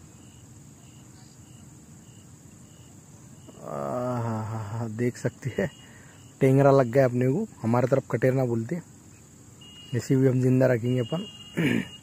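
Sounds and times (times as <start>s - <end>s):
faint insect chirps: 0.0s - 12.0s.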